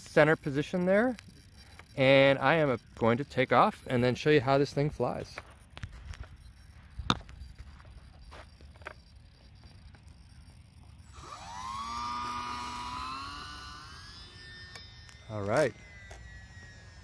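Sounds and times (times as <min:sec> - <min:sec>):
model plane motor whine: 0:00.0 - 0:17.0.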